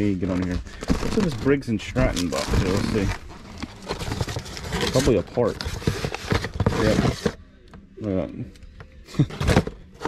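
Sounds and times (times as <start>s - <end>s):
cardboard box rustling and scraping: 0.8s - 7.4s.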